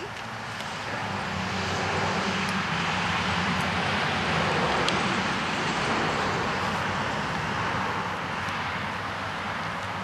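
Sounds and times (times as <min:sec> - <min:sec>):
vehicle engine drone: 0:00.0 - 0:10.0.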